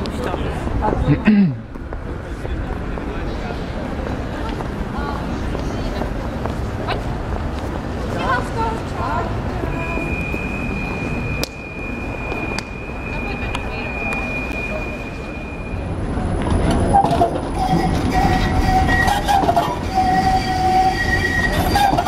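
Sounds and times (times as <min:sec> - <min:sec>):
traffic rumble: 0:00.0 - 0:22.0
voices of passersby: 0:00.0 - 0:22.0
thin high whine of tram: 0:08.2 - 0:22.0.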